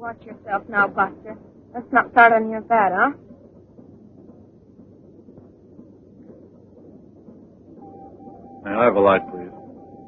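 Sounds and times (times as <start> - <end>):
faint background noise with hum: 0.0 - 10.0
steady high tone: 7.8 - 10.0.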